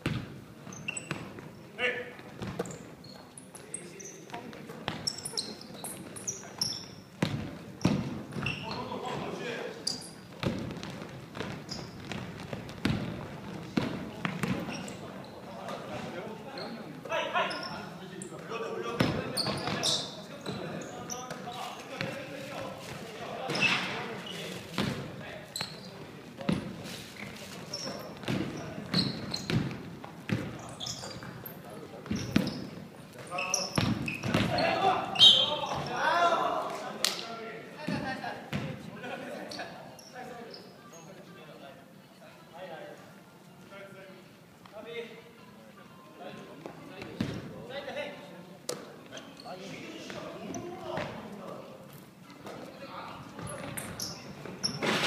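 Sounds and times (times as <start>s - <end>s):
basketball bouncing on hardwood floor: 10.4s - 13.2s.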